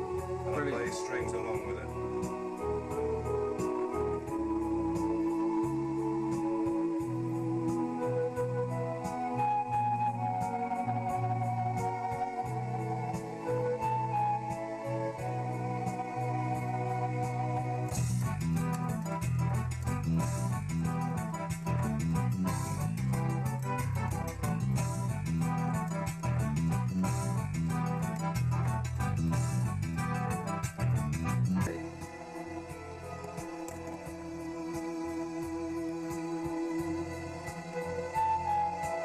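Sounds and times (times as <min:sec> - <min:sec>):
organ drum rhythm: 0:00.0 - 0:05.7, 0:17.9 - 0:39.0
electronic organ playing: 0:00.0 - 0:39.0.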